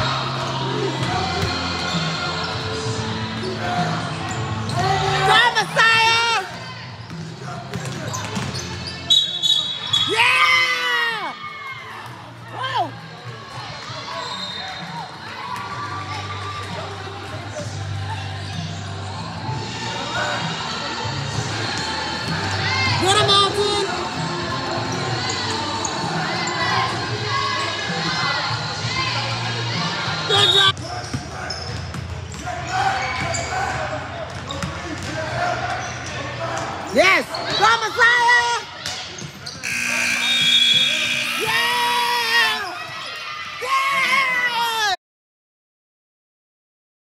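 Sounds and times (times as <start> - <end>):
people shouting and talking: 0.0 - 45.0.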